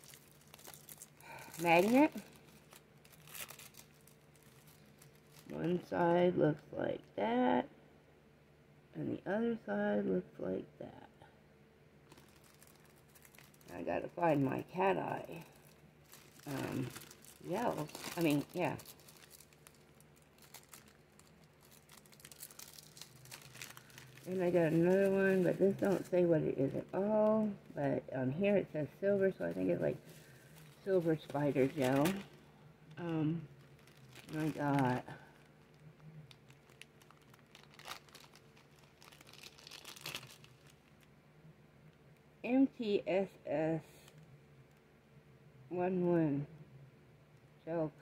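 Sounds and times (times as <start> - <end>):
plastic packaging crinkling: 0.0 - 5.9, 12.0 - 27.8, 28.8 - 41.1.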